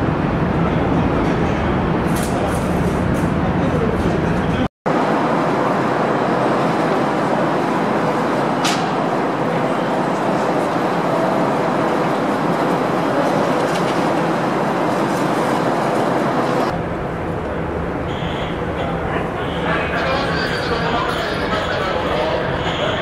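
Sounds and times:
underground station rushing noise: 0.0s - 23.0s.

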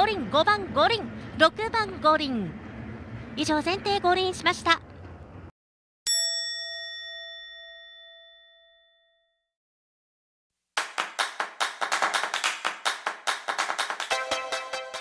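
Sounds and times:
bell-like ding: 6.1s - 9.5s
fast countdown ticks: 14.0s - 15.0s.

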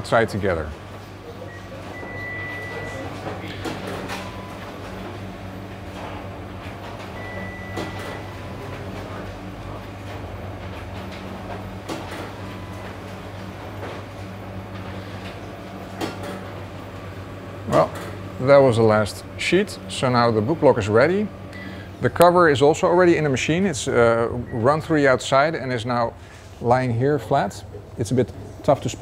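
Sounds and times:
machine humming: 0.0s - 29.0s.

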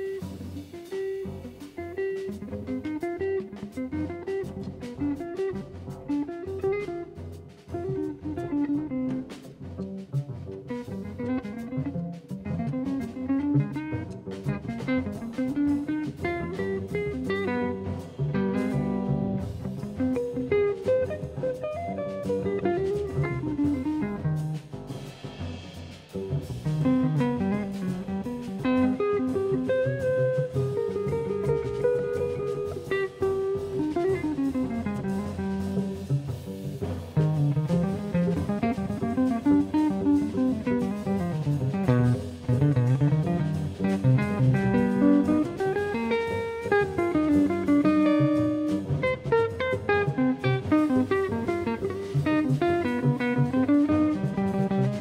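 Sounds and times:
drum kit with cymbals: 0.0s - 55.0s
electric guitar: 0.0s - 55.0s
upright bass: 0.0s - 55.0s.

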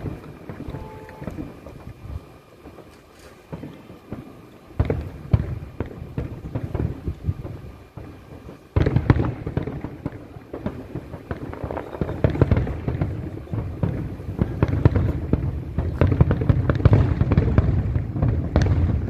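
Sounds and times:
fireworks bangs and crackles: 0.0s - 19.0s.

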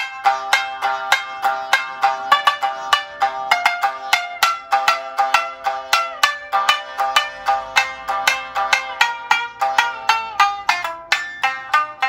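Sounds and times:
plucked shamisen with pitch slides: 0.0s - 12.0s
sympathetic strings buzzing: 0.0s - 12.0s.

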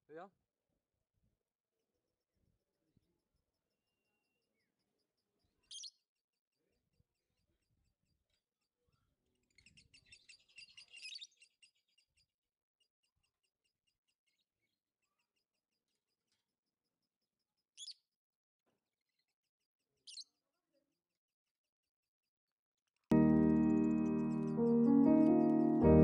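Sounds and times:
bird chirping: 3.8s - 6.1s, 9.3s - 12.3s, 17.7s - 18.1s, 23.1s - 26.0s.

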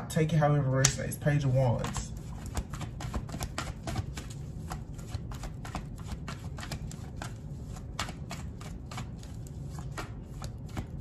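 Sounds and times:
cards being shuffled: 1.8s - 11.0s.

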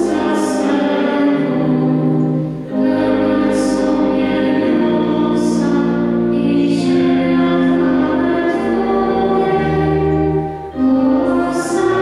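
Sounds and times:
pipe organ chords: 0.0s - 12.0s
woman singing a hymn: 0.0s - 12.0s.

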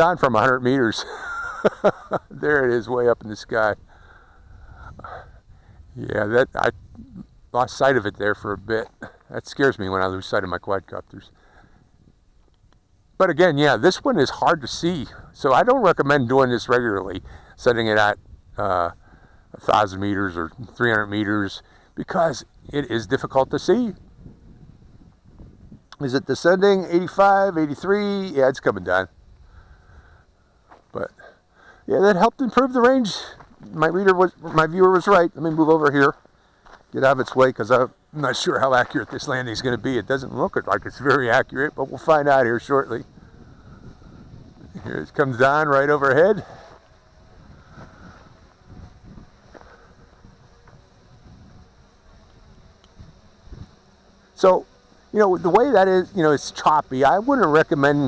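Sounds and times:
quadcopter motors buzzing: 0.0s - 58.0s
wind rumble on microphone: 3.7s - 8.9s, 14.1s - 20.8s, 22.4s - 26.0s, 42.4s - 45.4s, 46.3s - 53.9s.

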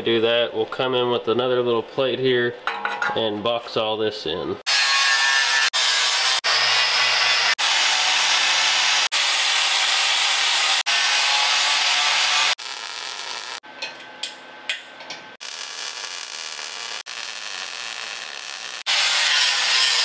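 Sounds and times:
angle grinder grinding steel: 4.7s - 13.6s, 15.4s - 20.0s.

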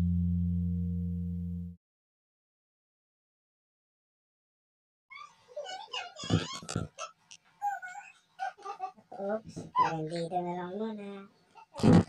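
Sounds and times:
person's broken vocal sounds: 11.6s - 12.0s.

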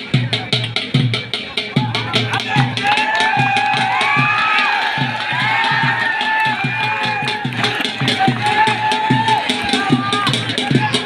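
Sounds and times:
drums beating a steady rhythm: 0.0s - 11.0s
crowd cheering and shouting: 1.8s - 11.0s.

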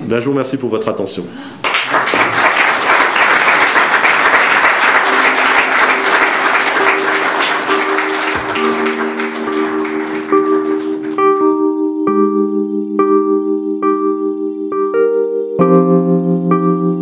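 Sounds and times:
audience applause: 1.6s - 11.3s
soft music with long notes: 4.4s - 17.0s.

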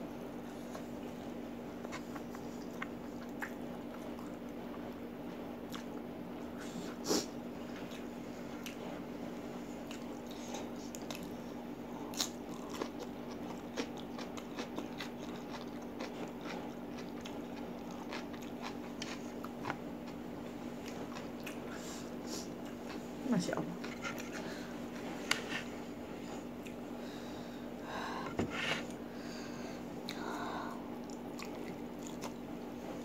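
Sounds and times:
steady low hum: 0.0s - 33.0s
person chewing noodles: 1.7s - 5.0s, 5.6s - 6.0s, 9.7s - 23.1s, 23.8s - 27.1s, 30.0s - 32.4s.

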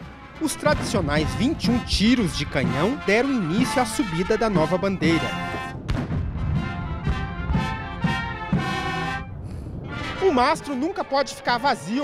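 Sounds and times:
low drum beats: 0.0s - 10.6s
military marching band brass: 0.0s - 12.0s.

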